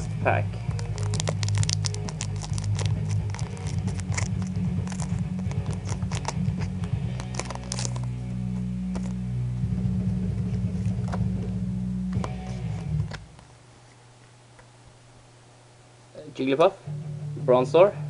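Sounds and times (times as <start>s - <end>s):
bass-heavy background music: 0.0s - 13.3s, 16.8s - 18.0s
foil pack crinkling and tearing: 0.7s - 8.2s.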